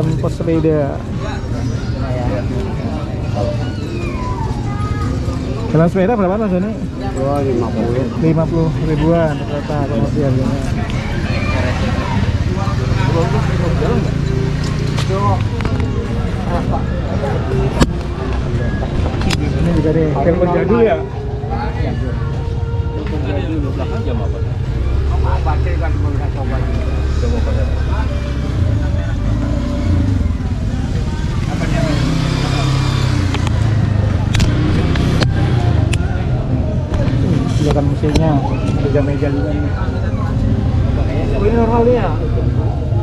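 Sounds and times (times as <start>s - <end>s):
indistinct voices: 0.0s - 43.0s
people talking in background: 0.0s - 43.0s
road traffic rumble: 0.0s - 43.0s.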